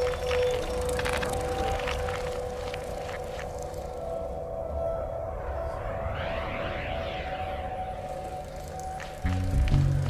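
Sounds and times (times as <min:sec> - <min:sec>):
steady held synth tone: 0:03.8 - 0:10.0
swirling sweep: 0:03.9 - 0:09.3.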